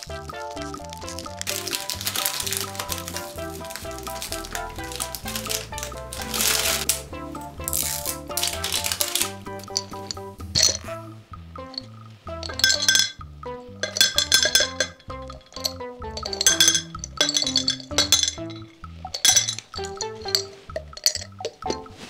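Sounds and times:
candies clinking onto plate: 0.0s - 10.9s, 11.8s - 13.2s, 13.8s - 21.8s
background music: 0.0s - 22.0s.

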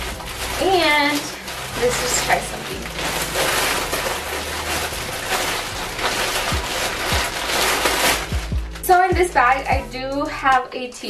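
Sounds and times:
plastic mailer rustling: 0.0s - 9.6s.

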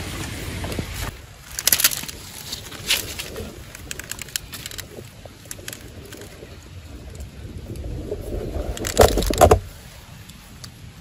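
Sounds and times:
hands rustling wet leaves: 0.0s - 11.0s
low wind rumble: 0.0s - 11.0s.

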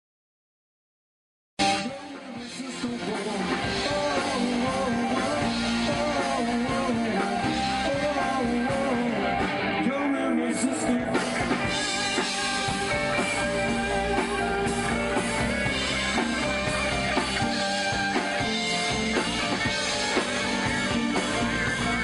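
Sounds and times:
drum kit: 1.6s - 9.8s, 10.7s - 22.0s
electric guitar: 1.6s - 22.0s.

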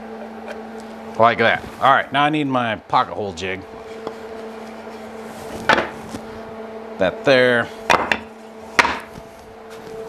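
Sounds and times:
steady low hum: 0.0s - 10.0s
wooden boards clattering on workbench: 5.6s - 6.0s, 7.9s - 9.1s.

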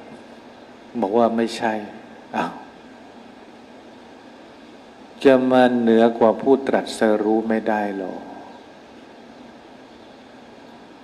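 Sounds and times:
faint room noise hiss: 0.0s - 11.0s.

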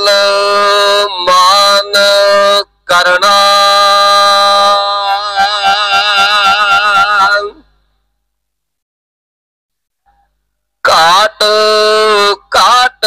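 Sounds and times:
person singing long notes: 0.0s - 7.7s.

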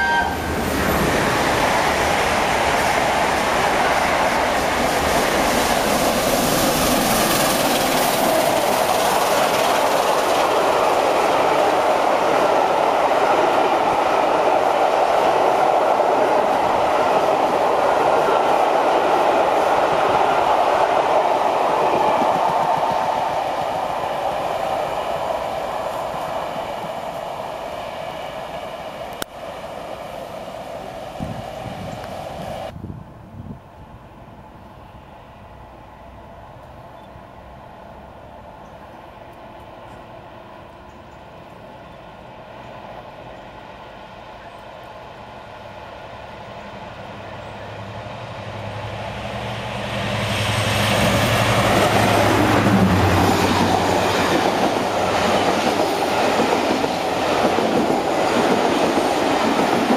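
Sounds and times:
wheels clacking on rails: 0.0s - 27.3s, 47.0s - 59.9s
trains rushing past: 0.0s - 59.9s.

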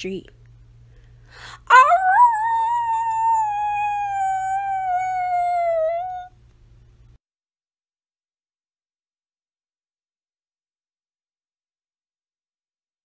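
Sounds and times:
long howl: 1.7s - 6.3s.

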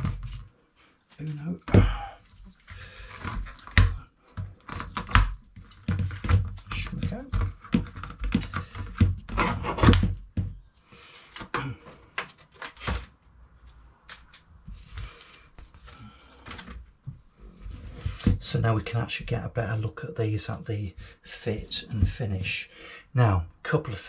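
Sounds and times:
rustling and scraping: 10.9s - 19.4s.

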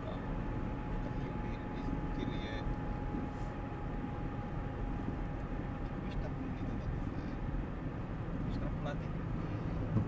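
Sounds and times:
thin steady whine: 0.0s - 9.9s
car road and engine noise: 0.0s - 10.0s.

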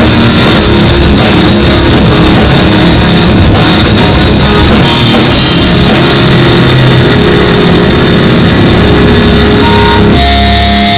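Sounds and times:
live rock band playing: 0.0s - 10.9s.

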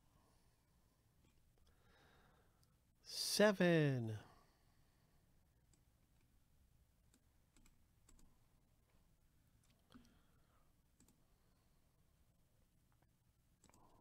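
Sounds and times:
computer mouse clicks: 7.1s - 8.3s, 11.0s - 11.2s, 13.6s - 14.0s.

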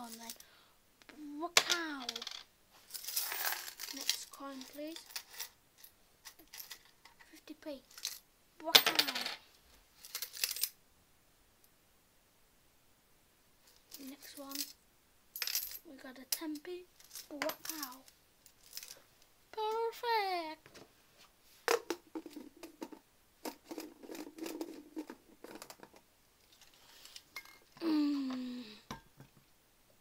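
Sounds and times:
coin clattering onto desk: 1.6s - 4.2s, 8.8s - 9.4s, 15.4s - 15.8s
metal coins clinking: 1.6s - 7.2s, 7.9s - 9.4s, 10.0s - 10.8s, 13.9s - 14.8s, 15.4s - 16.4s, 17.0s - 19.0s.

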